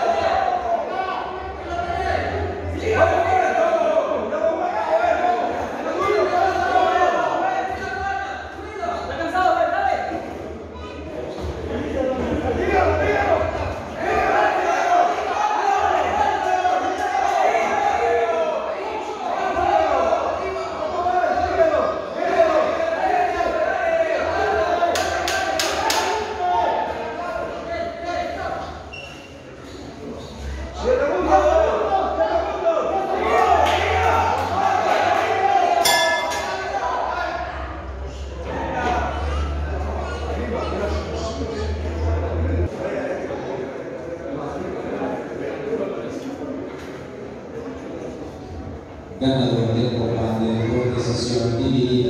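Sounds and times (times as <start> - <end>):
chatter in echoing hall: 0.0 - 52.0
people calling out: 30.7 - 42.7.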